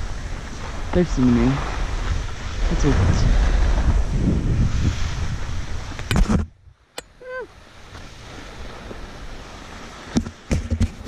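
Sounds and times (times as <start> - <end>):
steady hiss of wind: 0.0 - 11.0
wind buffeting microphone: 0.0 - 11.0.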